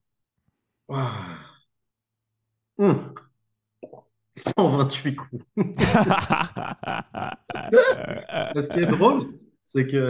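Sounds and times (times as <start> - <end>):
man sighing: 6.2 - 9.2.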